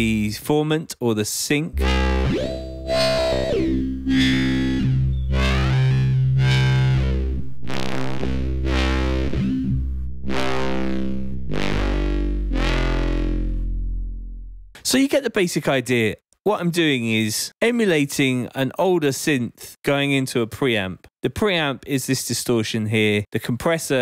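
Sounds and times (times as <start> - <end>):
distorted synthesizer bass: 1.7 - 14.8.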